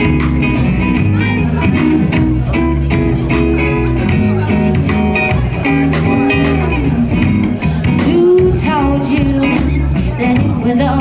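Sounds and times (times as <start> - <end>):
bass guitar: 0.0 - 11.0
electric guitar: 0.0 - 11.0
drum beat of sharp hits: 4.1 - 8.6.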